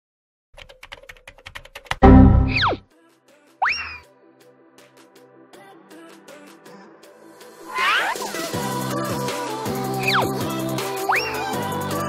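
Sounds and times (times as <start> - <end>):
computer keyboard typing: 0.6 - 2.6
falling pitch sound effect: 2.0 - 2.8
rising pitch sound effect: 2.0 - 2.8.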